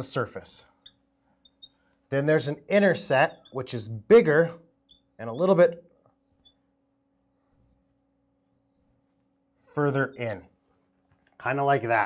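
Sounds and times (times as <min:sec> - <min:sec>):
faint steady hum: 0:00.0 - 0:12.0
marker squeaking on glass: 0:00.7 - 0:01.9, 0:02.9 - 0:03.8, 0:04.8 - 0:05.7, 0:06.3 - 0:06.7, 0:07.5 - 0:07.8, 0:08.7 - 0:09.1, 0:10.0 - 0:10.4.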